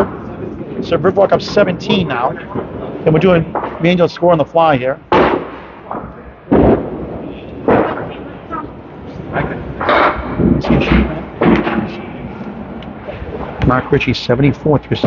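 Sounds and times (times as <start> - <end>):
background chatter: 0.0 - 15.0
bowling balls crashing into pins: 9.7 - 12.2.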